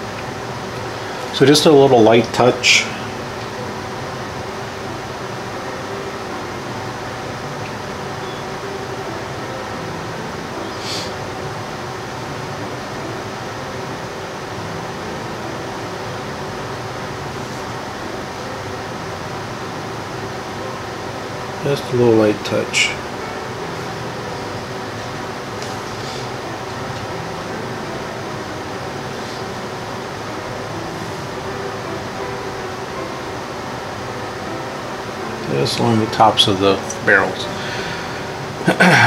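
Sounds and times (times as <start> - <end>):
mechanical fan hum: 0.0 - 39.0.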